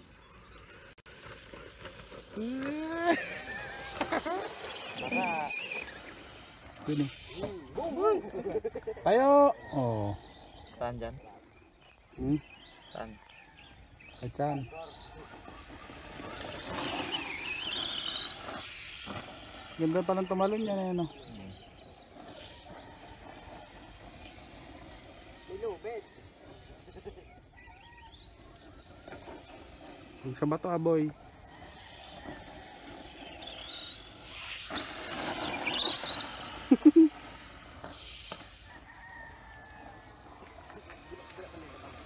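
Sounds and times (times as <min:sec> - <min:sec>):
rc truck motor whine: 0:00.0 - 0:42.0.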